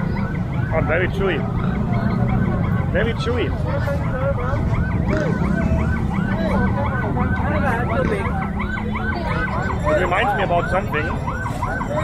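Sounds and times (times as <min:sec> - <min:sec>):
electronic sirens yelping: 0:00.0 - 0:12.0.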